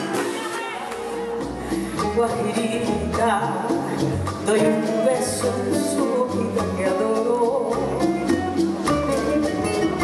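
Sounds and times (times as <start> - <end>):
acoustic guitar plucking: 0.0 - 10.0
bass notes: 0.0 - 10.0
light percussion: 0.0 - 10.0
plucked lute: 0.0 - 10.0.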